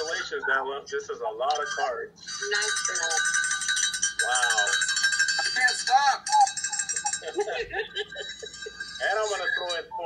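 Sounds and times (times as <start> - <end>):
loud bell-like ringing: 2.2 - 9.9.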